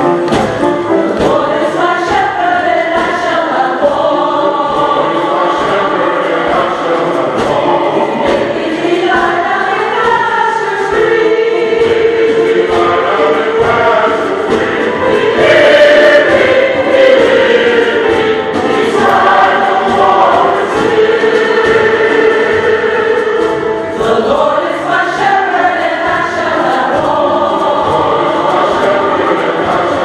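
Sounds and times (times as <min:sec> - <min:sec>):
choir singing gospel: 0:00.0 - 0:30.0.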